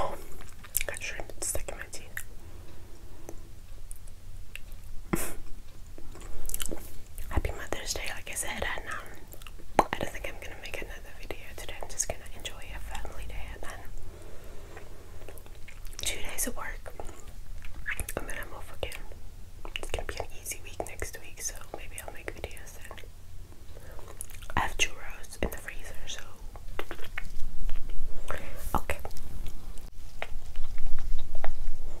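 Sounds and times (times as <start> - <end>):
woman whispering: 0.0 - 2.3, 7.2 - 9.3, 9.9 - 13.9, 16.0 - 17.2, 17.8 - 19.1, 19.8 - 23.1, 24.5 - 26.4, 28.2 - 29.2
soft chewing: 0.0 - 16.1, 16.8 - 21.0, 21.6 - 32.0
wet mouth clicks: 26.6 - 29.6.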